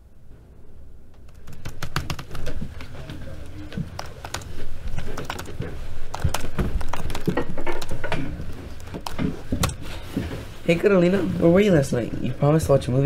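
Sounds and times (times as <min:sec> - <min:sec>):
low steady hum: 0:00.0 - 0:13.0
laptop keys clicking and tapping: 0:01.2 - 0:09.8.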